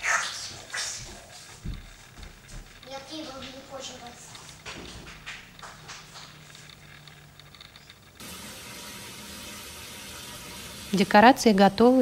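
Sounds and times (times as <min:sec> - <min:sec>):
water running from a tap: 0:08.2 - 0:12.0.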